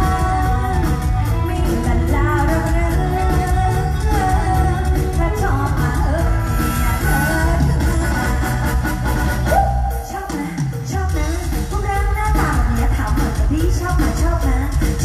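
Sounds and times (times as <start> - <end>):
band music through loudspeakers: 0.0 - 15.0.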